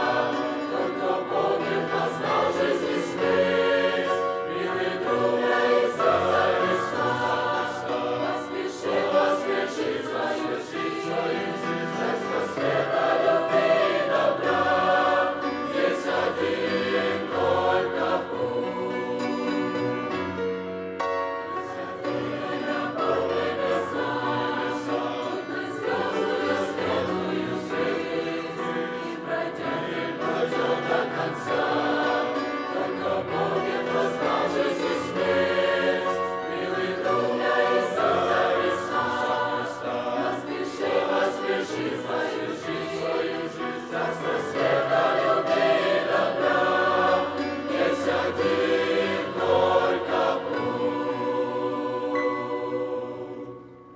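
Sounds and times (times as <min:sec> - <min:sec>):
choir singing a hymn: 0:00.0 - 0:53.9.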